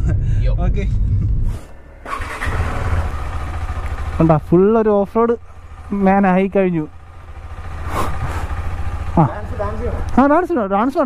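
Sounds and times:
motorcycle engine idling: 0:01.8 - 0:11.0.

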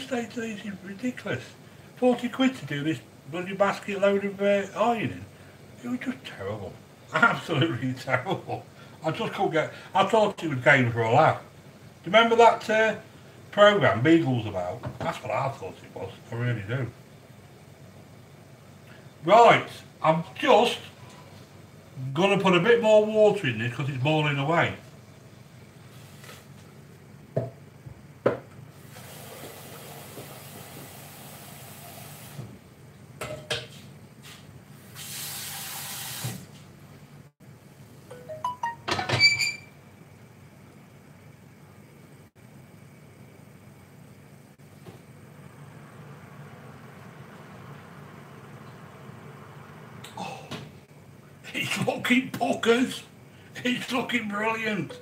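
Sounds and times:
tap water running into saucepan: 0:28.9 - 0:32.4.

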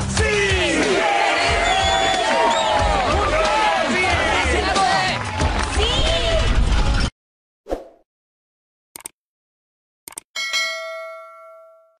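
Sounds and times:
click sound effects: 0:10.1 - 0:10.3
bell-like ding: 0:10.4 - 0:12.0.

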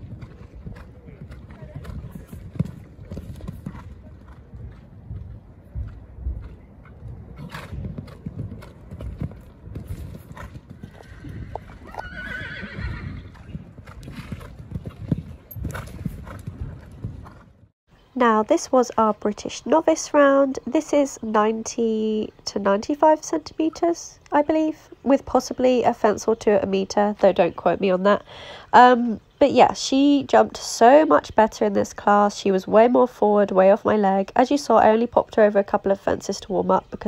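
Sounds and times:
hoofbeats on sand: 0:00.0 - 0:17.6.

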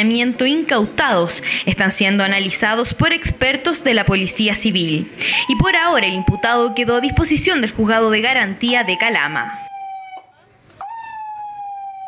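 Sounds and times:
police siren: 0:05.2 - 0:12.0.

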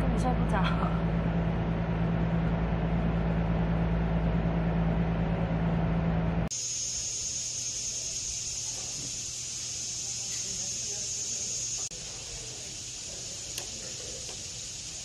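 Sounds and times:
machine hum with low drone: 0:00.0 - 0:10.4
steady hiss with high whine: 0:06.5 - 0:15.0.

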